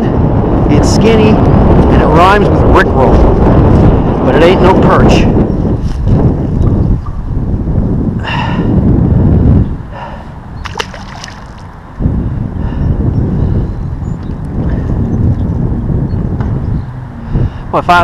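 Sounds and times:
wind rumbling on microphone: 0.0s - 18.0s
short splash in water: 10.6s - 11.6s.

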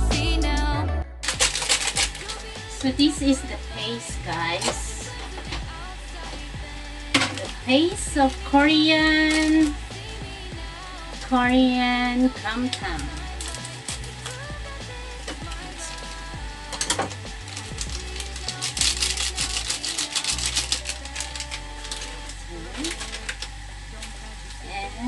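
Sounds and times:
background music: 0.0s - 25.0s
foil sachet crinkling: 1.2s - 24.6s.

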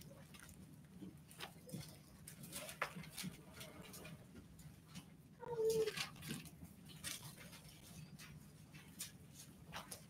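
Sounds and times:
faint rustling of pages turning: 0.0s - 10.0s.

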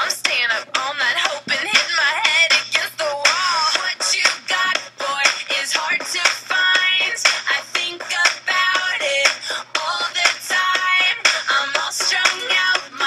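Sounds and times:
electronic pop song: 0.0s - 13.0s.

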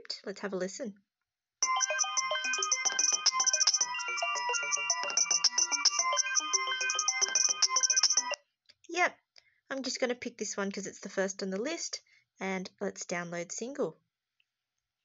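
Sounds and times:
repeating electronic synth notes: 1.6s - 8.4s.

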